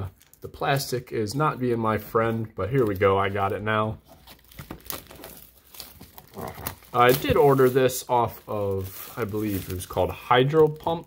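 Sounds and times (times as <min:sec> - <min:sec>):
plastic wrap crinkling: 0:02.2 - 0:11.0.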